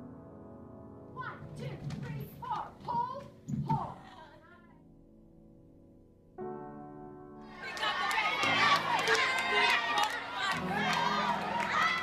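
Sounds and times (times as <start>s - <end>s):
background music with sustained notes: 0.0s - 12.0s
people shouting and cheering: 7.5s - 12.0s.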